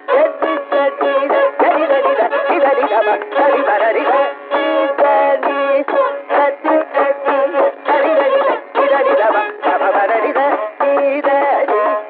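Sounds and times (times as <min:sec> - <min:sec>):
classical concert music on radio: 0:00.0 - 0:12.0.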